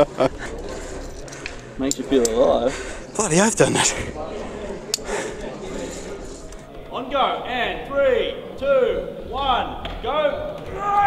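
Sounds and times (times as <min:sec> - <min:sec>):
indistinct voices: 0:03.0 - 0:06.6
man counting down: 0:03.1 - 0:04.2.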